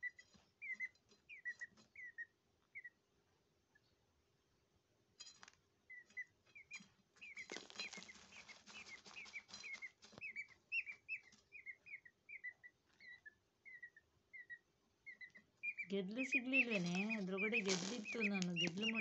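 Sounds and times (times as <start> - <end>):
peachick peeping: 0.0 - 4.1, 5.8 - 19.0
rustle and scratch of soil: 5.4 - 11.6, 16.1 - 19.0.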